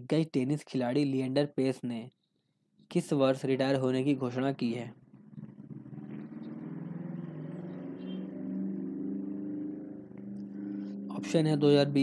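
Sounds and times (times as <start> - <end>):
vehicle engine running: 5.0 - 11.5.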